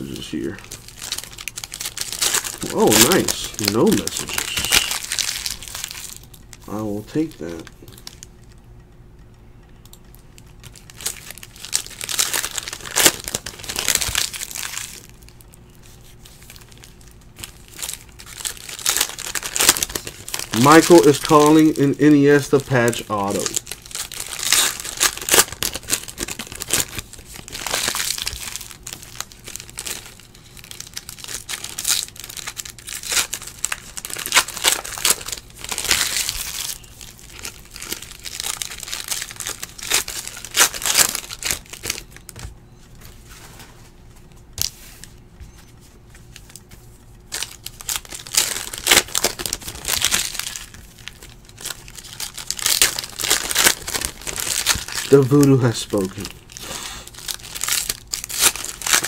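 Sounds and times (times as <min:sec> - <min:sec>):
foil wrappers tearing and crinkling: 0:00.0 - 0:08.3, 0:10.4 - 0:45.2, 0:46.1 - 0:59.0.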